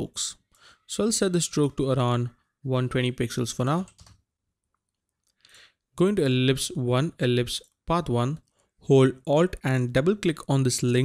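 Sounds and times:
faint breath: 0:00.5 - 0:00.9, 0:05.4 - 0:05.9.

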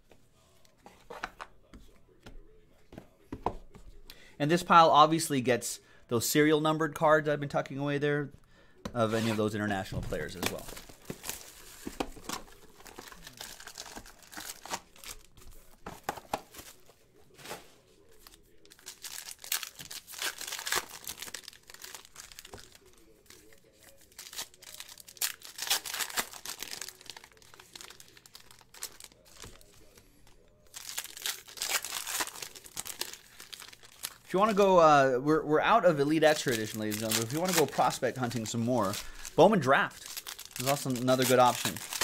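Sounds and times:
foil wrappers crinkling and tearing: 0:10.1 - 0:17.4, 0:18.2 - 0:30.0, 0:30.6 - 0:34.4, 0:36.0 - 0:42.0.

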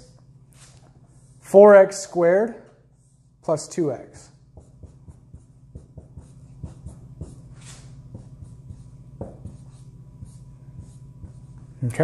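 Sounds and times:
marker writing on a whiteboard: 0:04.1 - 0:11.8.

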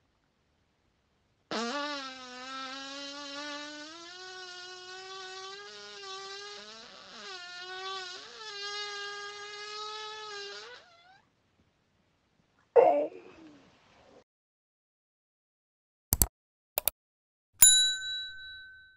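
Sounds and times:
high-pitched screeching fart: 0:01.5 - 0:11.3.

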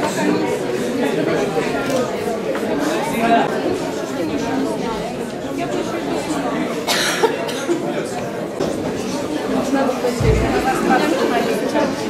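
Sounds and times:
audience chatter: 0:00.0 - 0:12.0
person coughing: 0:06.8 - 0:07.8.

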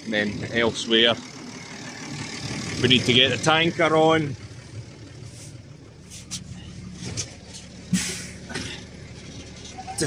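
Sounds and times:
tractor diesel engine idling: 0:00.0 - 0:10.0.

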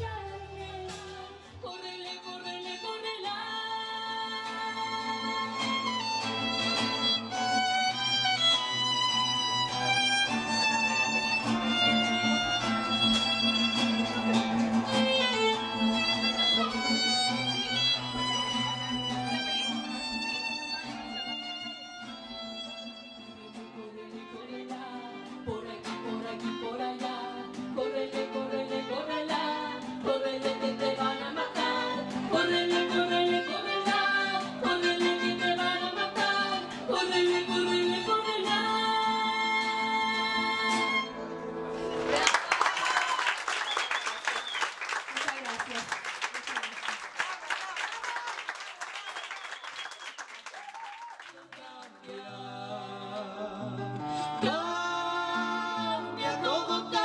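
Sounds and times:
acoustic guitar accompaniment: 0:00.0 - 0:44.6, 0:51.5 - 0:57.0
violin melody: 0:04.7 - 0:41.6.

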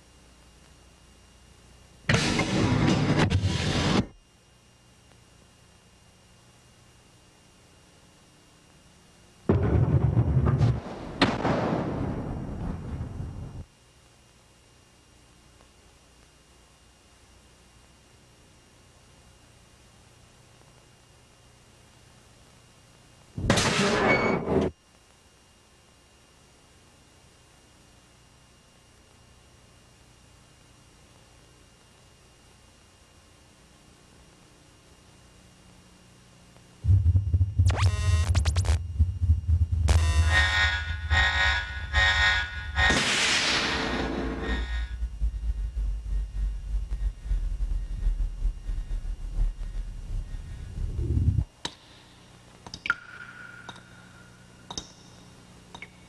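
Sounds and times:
faint tape hiss: 0:00.0 - 0:02.2, 0:04.1 - 0:23.5, 0:24.7 - 0:41.1, 0:41.7 - 0:56.0
sudden loud burst of noise: 0:02.1 - 0:04.2, 0:09.5 - 0:13.6, 0:36.8 - 0:51.5
deep boom with low rumble: 0:09.5 - 0:13.6, 0:36.8 - 0:40.1, 0:44.9 - 0:51.5
sharp crashing hit ringing: 0:39.9 - 0:45.4.

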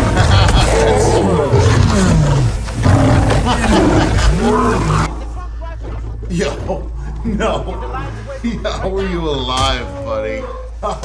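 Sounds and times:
lion growling and roaring: 0:00.0 - 0:05.3.

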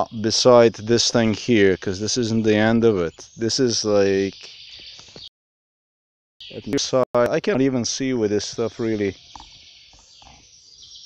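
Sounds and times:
distant birds chirping: 0:00.0 - 0:05.3, 0:06.4 - 0:11.0.

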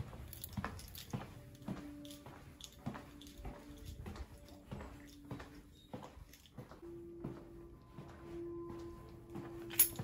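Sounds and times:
footsteps on tiled floor: 0:00.0 - 0:10.0.

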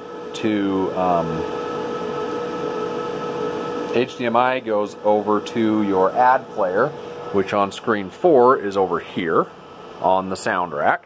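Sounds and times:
constant hum tones: 0:00.0 - 0:11.0
projector cooling fans whirring: 0:00.0 - 0:11.0.

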